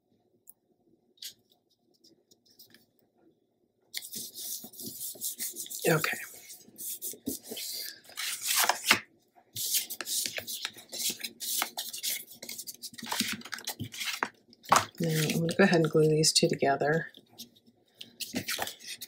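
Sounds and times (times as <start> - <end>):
paper rustling and scraping: 4.0 - 9.0, 9.6 - 16.0, 17.4 - 19.0.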